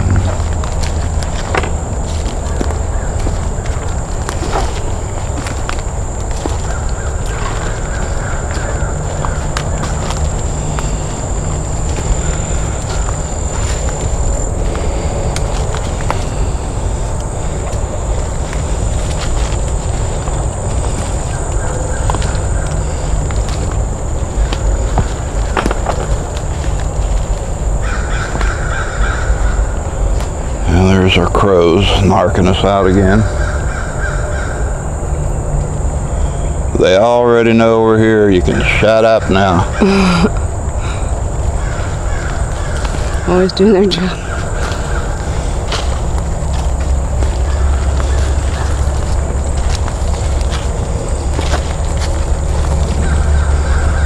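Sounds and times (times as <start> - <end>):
footsteps on forest floor: 0.0 - 36.4, 37.9 - 54.0
crows cawing: 0.0 - 54.0
low rumble: 0.0 - 54.0.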